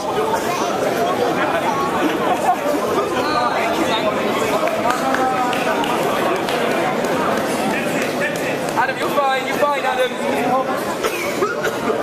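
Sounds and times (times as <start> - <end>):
crowd babble in echoing hall: 0.0 - 12.0.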